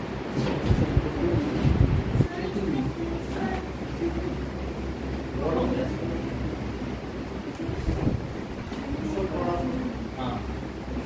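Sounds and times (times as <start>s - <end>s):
steady low hum: 0.0s - 11.0s
low voices: 0.4s - 11.0s.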